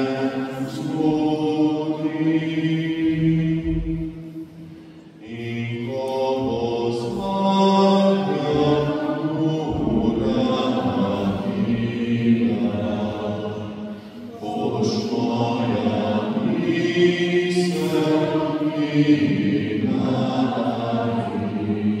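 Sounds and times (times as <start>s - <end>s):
voices singing chant-like hymn: 0.0s - 22.0s.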